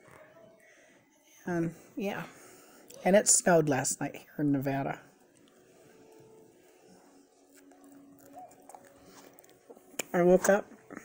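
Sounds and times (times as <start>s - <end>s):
chewing close to microphone: 7.4s - 10.1s.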